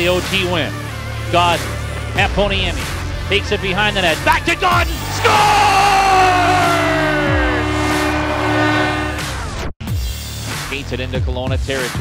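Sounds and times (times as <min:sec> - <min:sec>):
backing music track: 0:00.0 - 0:12.0
siren tone winding down: 0:05.3 - 0:09.6
arena goal horn: 0:05.8 - 0:09.6.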